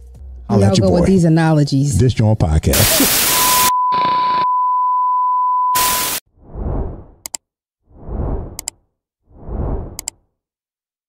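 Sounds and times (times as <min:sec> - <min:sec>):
static hiss: 0:02.8 - 0:03.7, 0:05.8 - 0:06.2
test-tone beep: 0:03.3 - 0:06.2.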